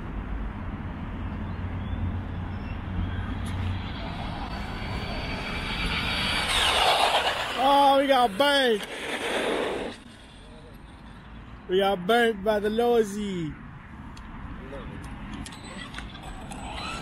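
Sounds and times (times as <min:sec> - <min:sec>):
steady low hum: 0:02.2 - 0:07.6
tyres rushing: 0:03.0 - 0:11.2
electric toy truck motors whining: 0:03.2 - 0:11.2, 0:15.6 - 0:17.0.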